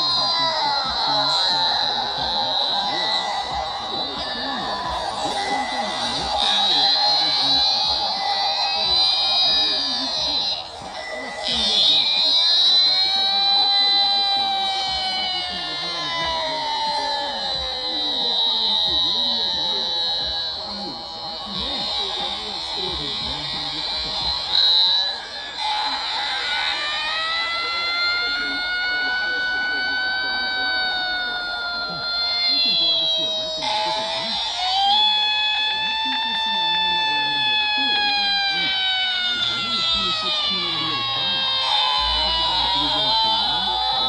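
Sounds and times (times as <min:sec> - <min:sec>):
electronic buzzing tone: 0:00.0 - 0:44.0
high voice holding long notes: 0:00.0 - 0:44.0.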